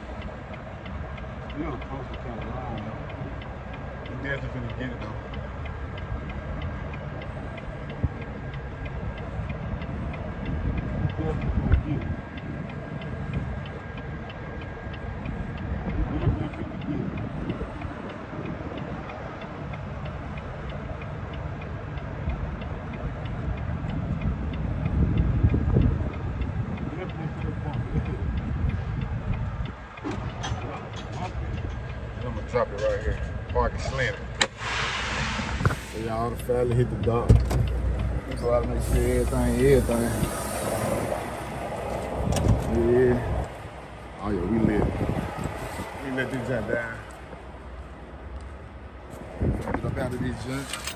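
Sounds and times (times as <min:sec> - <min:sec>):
diesel truck engine rumbling: 0:00.0 - 0:50.9.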